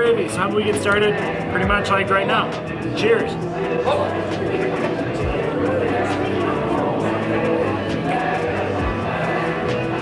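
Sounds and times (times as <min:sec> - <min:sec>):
background music with held notes: 0:00.0 - 0:10.0
indistinct voices: 0:00.0 - 0:10.0.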